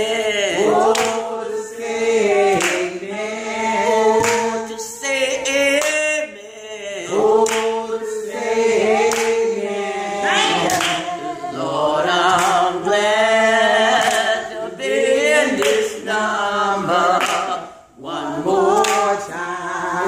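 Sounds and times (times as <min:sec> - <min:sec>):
other voices singing: 0:00.0 - 0:20.0
woman singing gospel a cappella: 0:00.0 - 0:20.0
hand clap: 0:00.8 - 0:01.3, 0:02.4 - 0:03.0, 0:04.1 - 0:04.7, 0:05.4 - 0:06.2, 0:07.2 - 0:08.0, 0:08.9 - 0:09.5, 0:10.5 - 0:11.2, 0:12.2 - 0:12.8, 0:13.9 - 0:14.4, 0:15.5 - 0:16.0, 0:17.1 - 0:17.6, 0:18.7 - 0:19.2.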